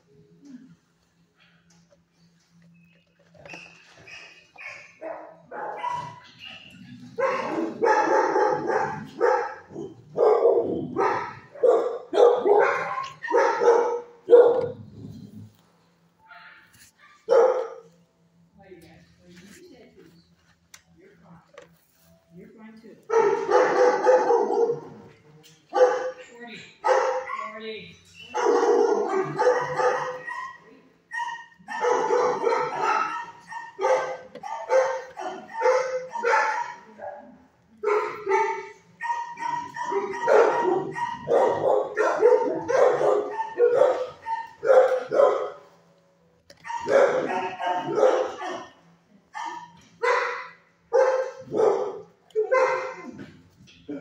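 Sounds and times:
dogs barking: 4.0s - 15.1s, 16.9s - 18.0s, 23.0s - 45.9s, 46.6s - 53.4s.

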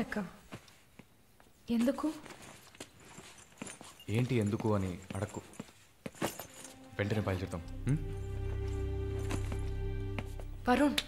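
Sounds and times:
footsteps on wooden floor: 8.5s - 10.6s.

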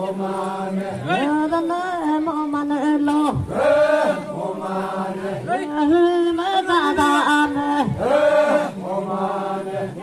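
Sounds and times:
group chanting long notes: 0.0s - 1.6s, 3.0s - 10.0s.

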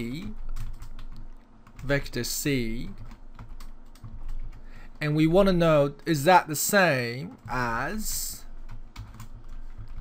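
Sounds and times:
person speaking: 0.0s - 0.6s, 1.8s - 3.1s, 5.0s - 8.6s
typing on computer keyboard: 0.1s - 2.0s, 2.8s - 4.7s, 8.2s - 10.0s.

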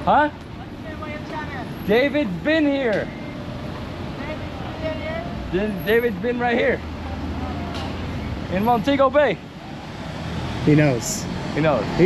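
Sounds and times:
traffic engines rumbling: 0.0s - 12.0s.

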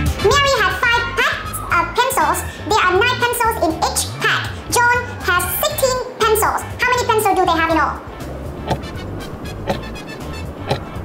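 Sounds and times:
low background music: 0.0s - 11.0s
countdown timer ticking: 8.4s - 11.0s.

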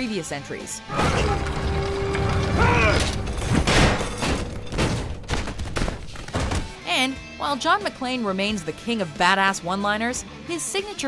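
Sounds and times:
film score: 0.4s - 7.9s
body tumbling down metal stairs: 3.2s - 6.8s.

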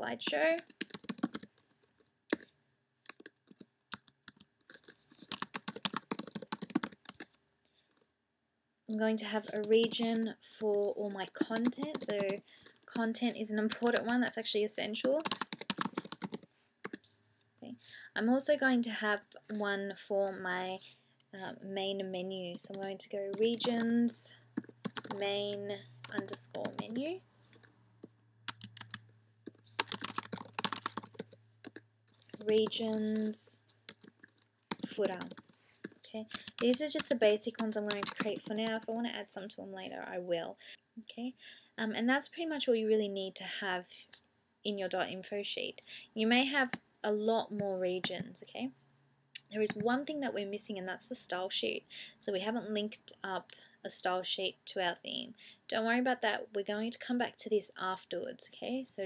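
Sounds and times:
typing on computer keyboard: 0.2s - 2.5s, 3.1s - 7.4s, 9.4s - 12.8s, 13.7s - 14.3s, 15.2s - 17.0s, 22.5s - 23.9s, 24.6s - 25.2s, 26.0s - 38.9s.

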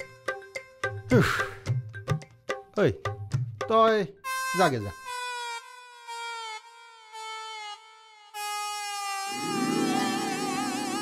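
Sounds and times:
lower musical accompaniment: 9.3s - 11.0s
slow melody of long held notes: 9.3s - 11.0s.

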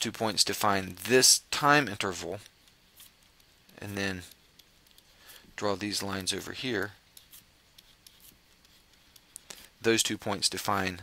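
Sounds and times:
stylus ticking on tablet screen: 2.4s - 5.1s.

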